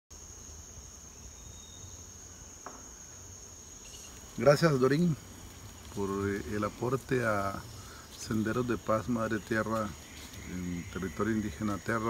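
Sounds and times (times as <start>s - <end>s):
high-pitched insect chorus: 0.1s - 12.0s.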